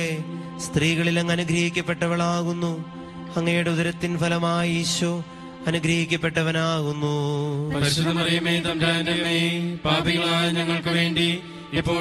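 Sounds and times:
person chanting a prayer: 0.0s - 12.0s
sustained musical drone: 0.0s - 12.0s.

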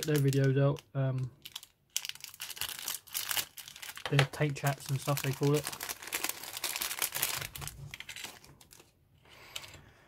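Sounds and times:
plastic bag crinkling: 0.0s - 9.8s.

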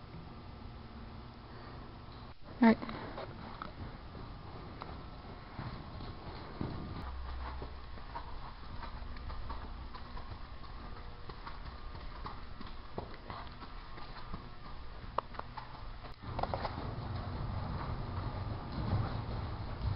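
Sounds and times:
horse hoofbeats on soft dirt: 2.4s - 19.9s.

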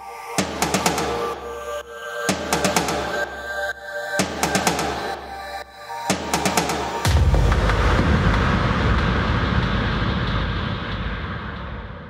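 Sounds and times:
trance music noise wash: 0.0s - 12.0s.

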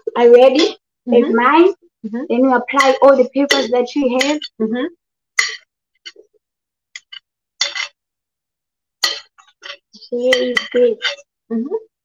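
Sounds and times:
metal spoon scraping a plate: 9.0s - 11.3s.

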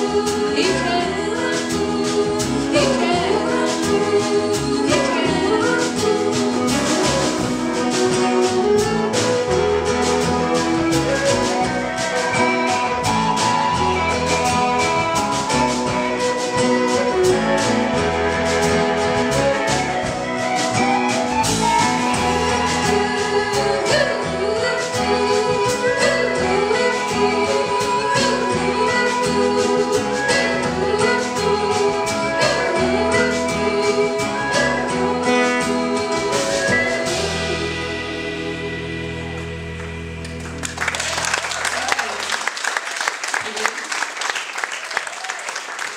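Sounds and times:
live band playing instrumental: 0.0s - 42.4s.

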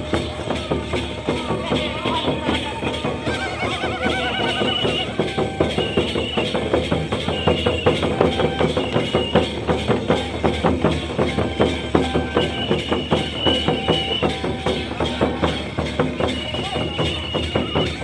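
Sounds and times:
crowd voices: 0.0s - 18.0s
drums beating quick rhythm: 0.0s - 18.0s.

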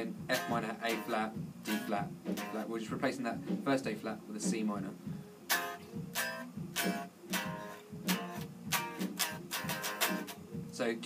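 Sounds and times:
electric guitar chords strummed: 0.0s - 11.0s.

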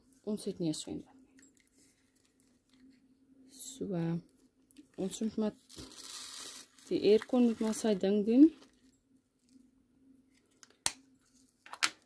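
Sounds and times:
plastic bags and containers handled: 0.0s - 3.1s, 4.3s - 9.7s
faint steady hum: 0.0s - 12.0s.

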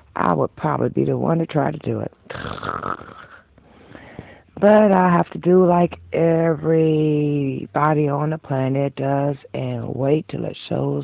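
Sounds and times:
person breathing out: 2.4s - 4.6s.

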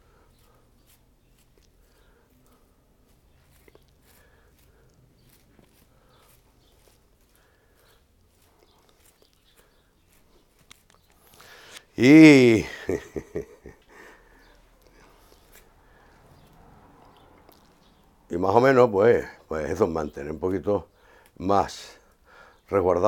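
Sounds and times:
clicks and rustles of leaves: 0.3s - 12.0s.

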